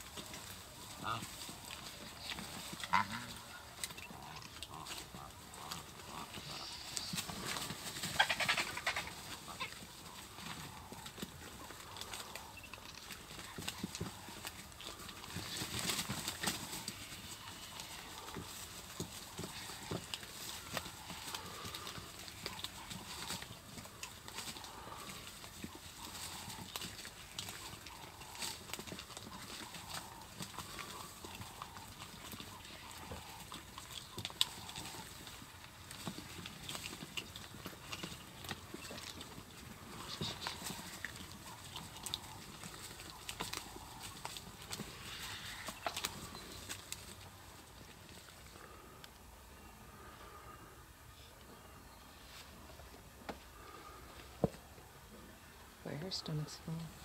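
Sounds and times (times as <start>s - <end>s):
bills pecking at meat and bone: 0.0s - 57.0s
birds scuffling: 0.0s - 57.0s.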